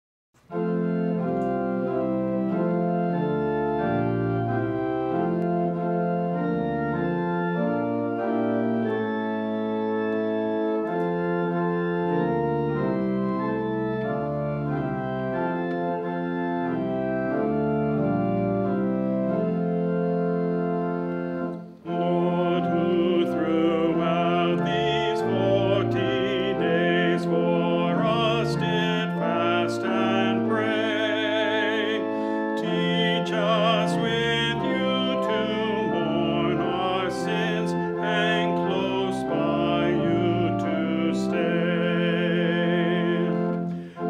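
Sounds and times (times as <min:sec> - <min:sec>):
church organ playing a hymn: 0:00.4 - 0:44.0.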